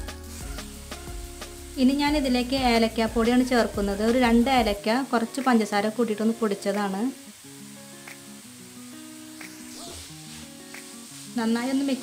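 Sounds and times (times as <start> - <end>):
coconut sizzling in a pan: 0.0 - 12.0
quiet background music: 0.0 - 12.0
voice: 1.8 - 7.2, 11.4 - 12.0.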